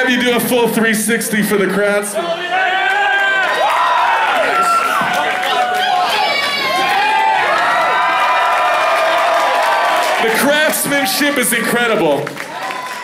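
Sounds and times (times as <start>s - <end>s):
crowd cheering and whooping: 2.3s - 13.0s.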